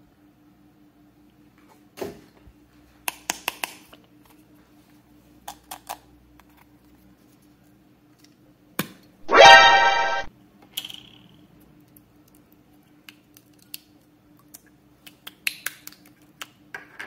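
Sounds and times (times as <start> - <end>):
single tone with overtones: 9.2 - 10.3.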